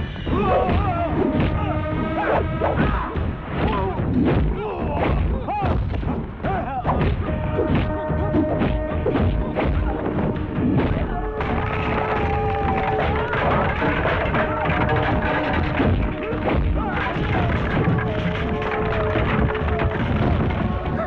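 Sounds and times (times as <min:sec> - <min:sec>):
fight scene background music: 0:00.0 - 0:21.0
punches and thuds: 0:00.4 - 0:21.0.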